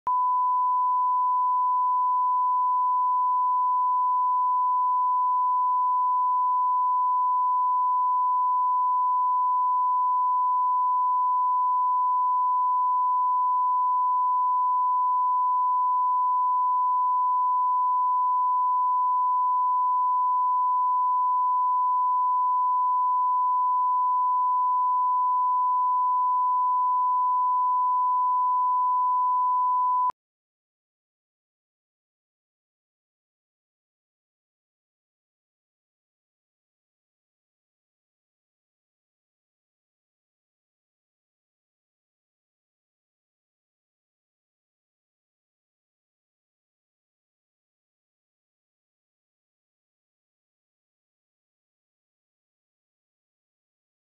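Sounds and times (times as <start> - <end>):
sine-wave line-up tone: 0.1 - 30.2.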